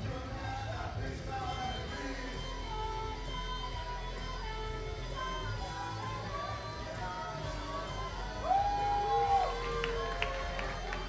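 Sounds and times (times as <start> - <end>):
man singing into a microphone: 0.0 - 4.0
karaoke backing track with guitar: 0.0 - 11.0.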